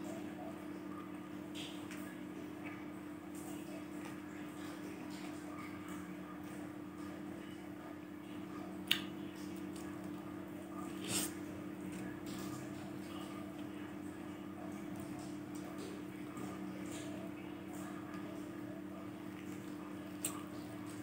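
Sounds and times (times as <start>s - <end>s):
rind snapping: 8.8s - 9.1s.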